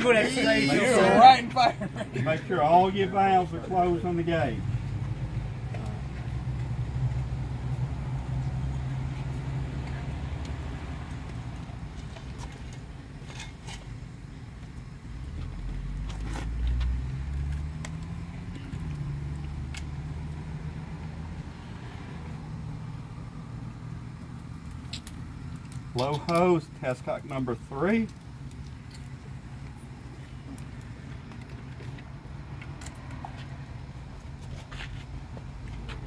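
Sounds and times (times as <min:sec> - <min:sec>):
vehicle engine humming: 0:00.0 - 0:36.0.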